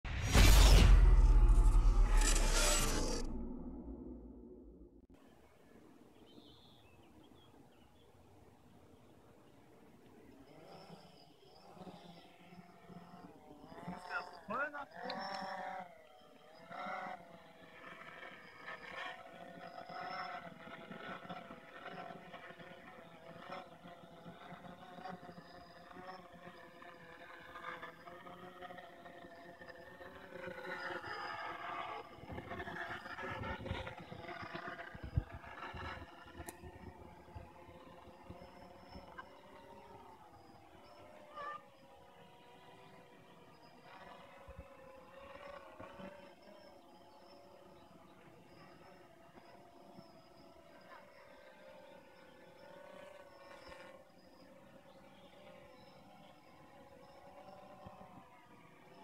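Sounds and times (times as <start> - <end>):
low rumbling: 0.1 - 5.2
quadcopter motors buzzing: 0.1 - 59.0.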